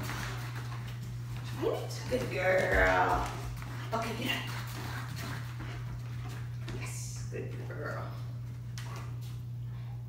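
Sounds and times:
dog moving on foam mats: 0.0 - 9.5
steady low hum: 0.0 - 10.0.

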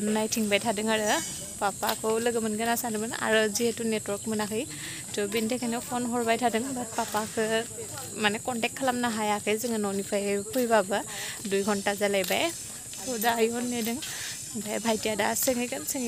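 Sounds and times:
high-pitched hiss: 0.0 - 16.0
woman talking: 0.0 - 16.0.

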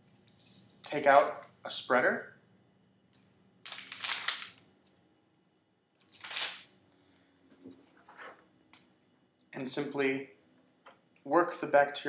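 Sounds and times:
plastic rustling: 3.7 - 4.6, 6.1 - 6.7.

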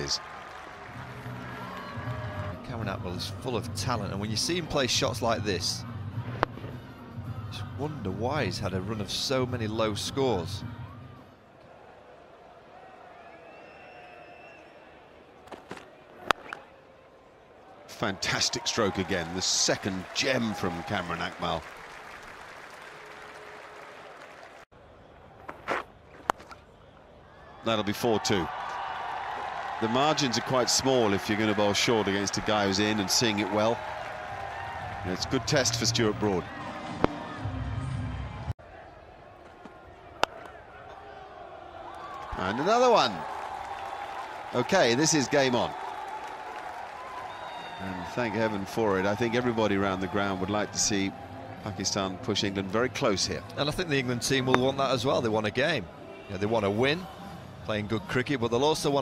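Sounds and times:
bat hitting ball: 15.5 - 16.6, 40.2 - 40.6.

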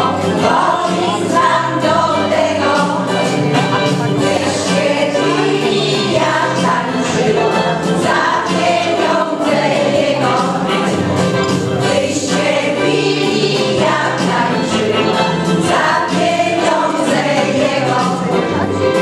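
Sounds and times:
women's choir singing: 0.0 - 3.2, 4.2 - 11.0, 11.8 - 18.7.

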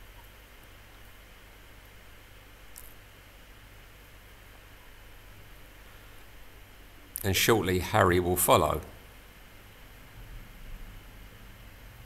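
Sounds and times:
outdoor ambience hiss: 0.0 - 12.0.

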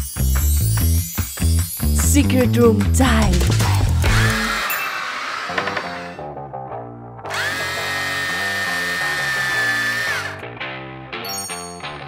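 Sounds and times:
background music: 0.0 - 12.0
cordless drill motor whining: 4.0 - 6.2, 7.3 - 10.4.

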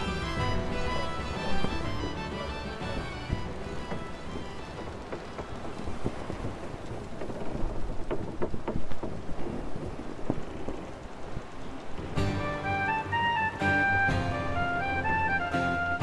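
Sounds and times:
steady rain: 0.0 - 16.0.

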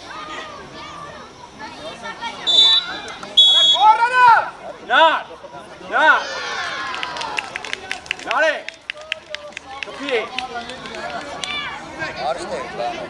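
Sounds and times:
people shouting: 2.4 - 5.2, 5.9 - 7.4.

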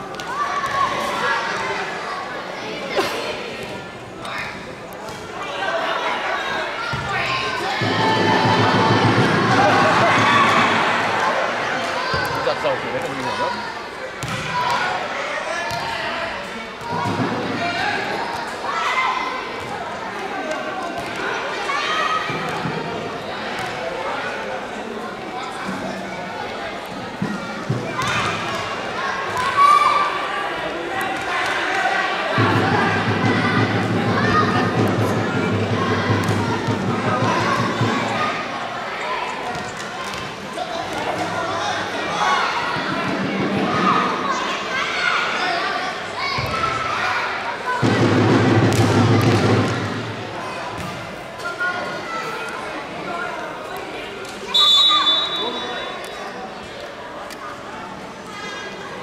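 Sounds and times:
voices shouting: 5.4 - 16.3
short high whistle: 54.5 - 56.1.

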